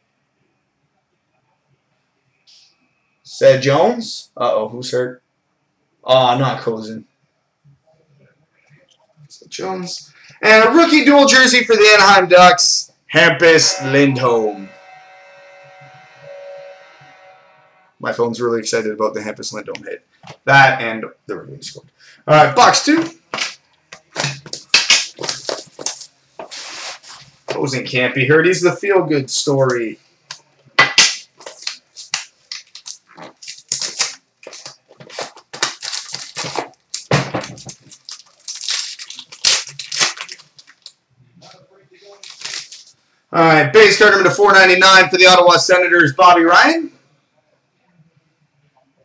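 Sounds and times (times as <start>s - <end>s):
mobile phone buzzing: 13.4s - 18.0s
wrapper tearing and crinkling: 24.2s - 27.2s, 31.0s - 41.0s, 42.1s - 43.0s.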